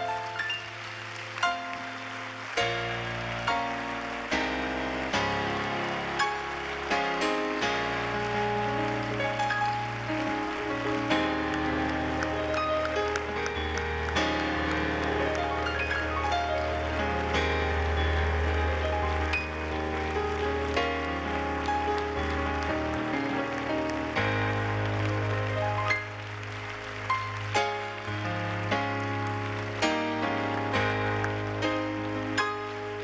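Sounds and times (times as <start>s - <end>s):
congregation applauding: 0.0s - 33.0s
live church music: 0.0s - 33.0s.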